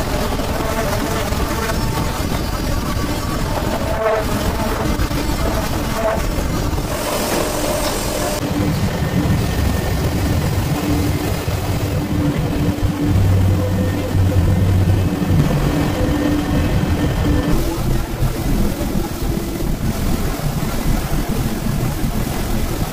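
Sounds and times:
machinery rumbling: 0:00.0 - 0:22.9.

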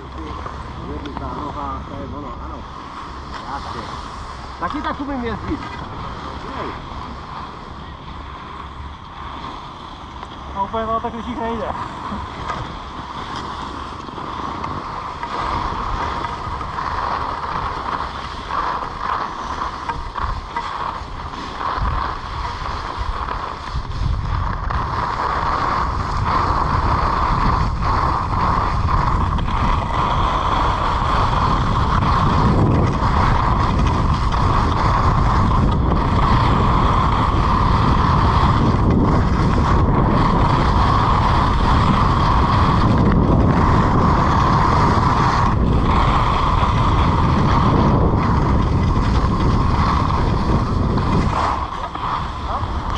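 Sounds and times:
skis scraping on hard snow: 0:00.0 - 0:52.9
wind buffeting microphone: 0:00.0 - 0:52.9.

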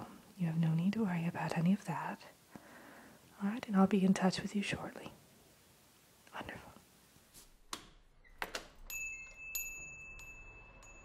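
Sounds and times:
small bell chiming: 0:08.8 - 0:11.0.

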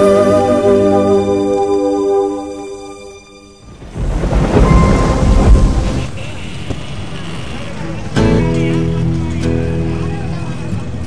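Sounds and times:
loud deep rumbling: 0:03.7 - 0:07.6.

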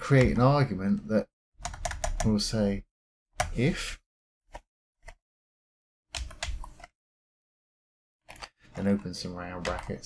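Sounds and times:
computer keyboard keystrokes: 0:01.6 - 0:02.3, 0:06.2 - 0:06.9.

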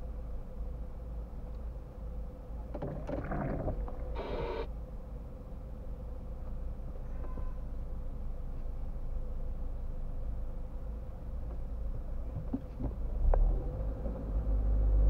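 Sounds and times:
low car cabin rumble: 0:02.6 - 0:04.7.

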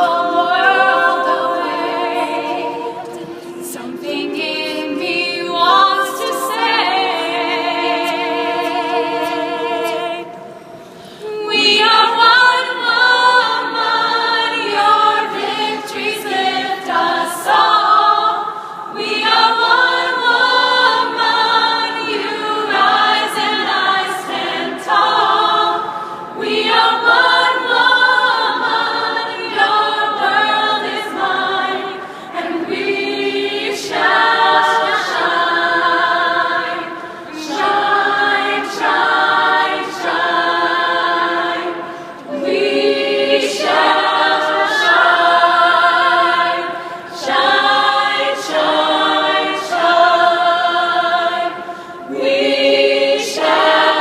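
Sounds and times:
women's choir singing a cappella: 0:00.0 - 0:54.0.

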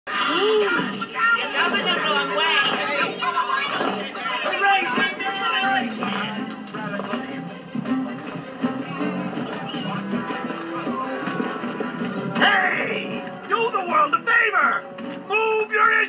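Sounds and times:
film soundtrack music: 0:05.7 - 0:16.0.

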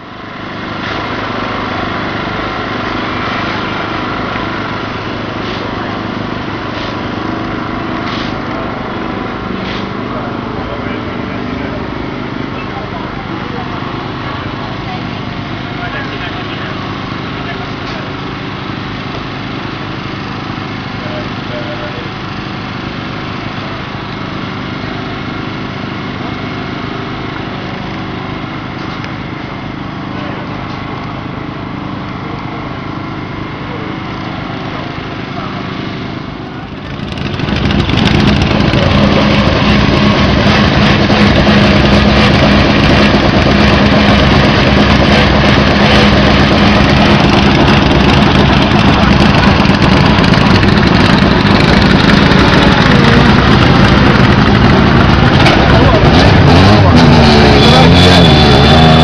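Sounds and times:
engine running steadily: 0:00.0 - 0:59.0
rally car engine at low revs: 0:00.0 - 0:59.0.

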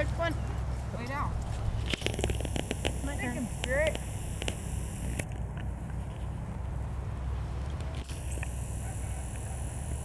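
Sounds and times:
small clicks: 0:01.9 - 0:05.7, 0:07.7 - 0:08.6
camcorder zoom motor whirring: 0:02.0 - 0:05.3, 0:08.0 - 0:10.0.

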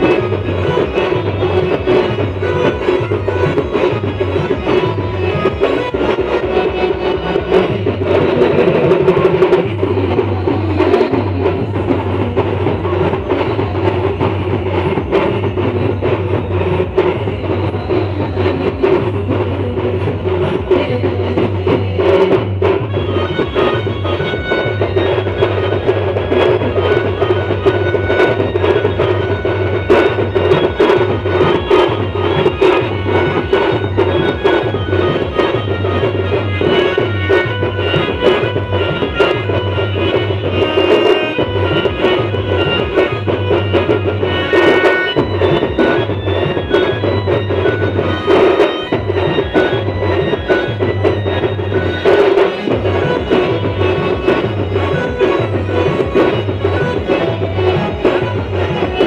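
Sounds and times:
band music through loudspeakers: 0:00.0 - 0:59.0
steady drum beat: 0:00.0 - 0:59.0.

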